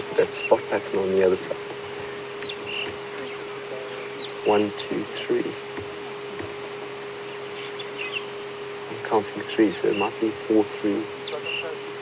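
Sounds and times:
bird chirping: 0:00.0 - 0:00.8, 0:01.7 - 0:05.2, 0:05.8 - 0:08.7, 0:09.7 - 0:10.3, 0:11.0 - 0:11.8
steady low hum: 0:00.0 - 0:12.0.

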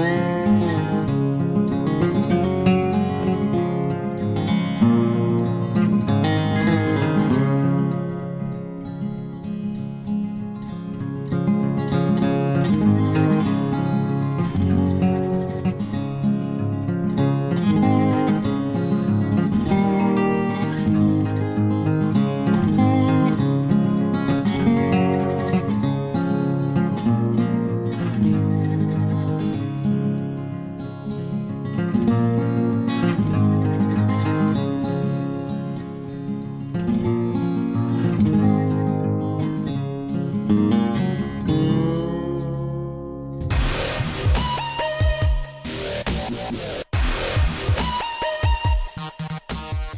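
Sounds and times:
acoustic guitar melody: 0:00.0 - 0:49.9.

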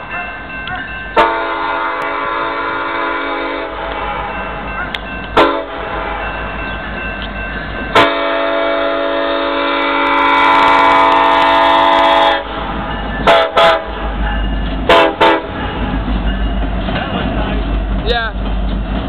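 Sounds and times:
diesel engines rumbling: 0:00.0 - 0:19.0
locomotive air horn: 0:01.2 - 0:04.3, 0:05.4 - 0:06.3, 0:07.9 - 0:12.6, 0:13.3 - 0:13.9, 0:14.9 - 0:15.6.

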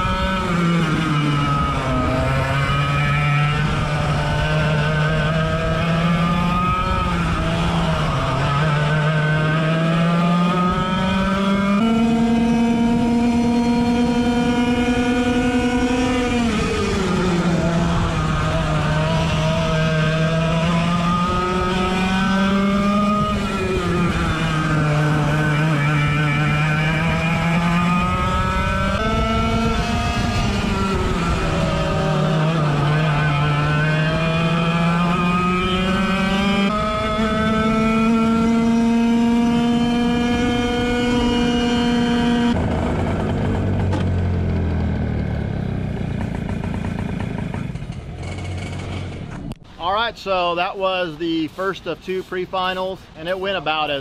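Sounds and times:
kart engine revving: 0:00.0 - 0:50.7.

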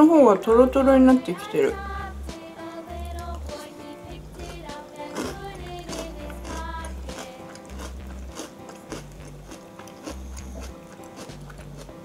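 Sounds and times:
background music with bass line: 0:00.5 - 0:12.0
chewing and crunching cereal: 0:02.9 - 0:03.7, 0:04.3 - 0:12.0.

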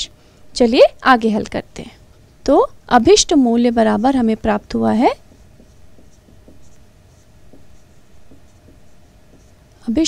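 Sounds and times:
marker pen writing on whiteboard: 0:03.9 - 0:10.0.

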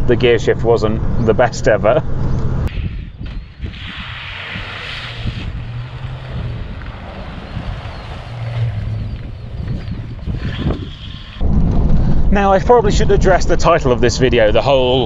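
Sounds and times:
wind on microphone: 0:02.6 - 0:14.4
car driving past: 0:03.9 - 0:11.4.

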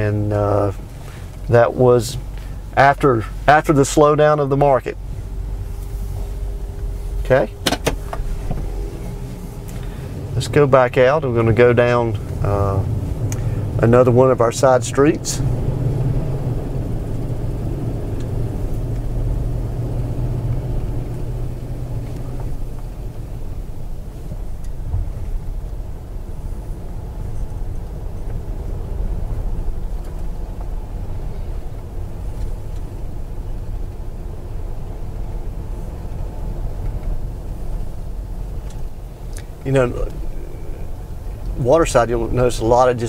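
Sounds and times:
car engine rumble inside cabin: 0:00.0 - 0:43.0.

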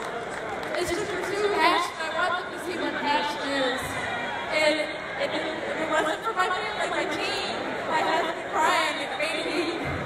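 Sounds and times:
indistinct voices in a large hall: 0:00.0 - 0:10.0.

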